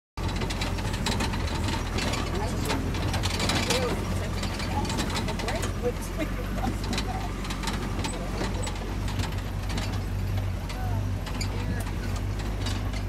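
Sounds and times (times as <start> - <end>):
engine drone: 0.2 - 13.0
vehicle body rattling and knocking: 0.2 - 13.0.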